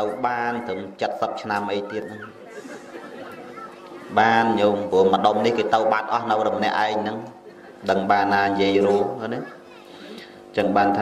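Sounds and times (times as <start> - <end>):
man speaking: 0.0 - 2.3, 4.1 - 9.6, 10.5 - 11.0.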